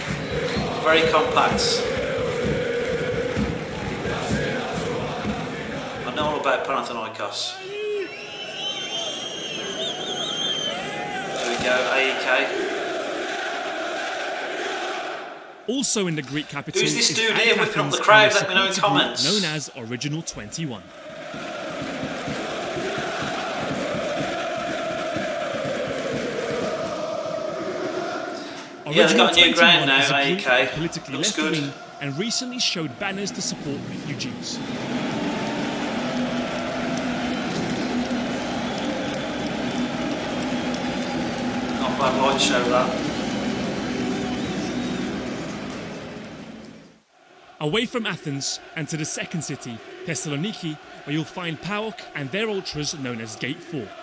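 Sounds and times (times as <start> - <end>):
stadium crowd chanting: 0.0 - 15.8, 16.6 - 54.0.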